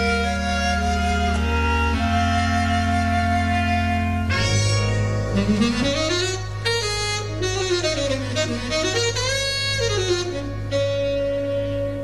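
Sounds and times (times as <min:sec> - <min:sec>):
steady low tone: 0:00.0 - 0:12.0
wind instrument melody: 0:00.0 - 0:12.0.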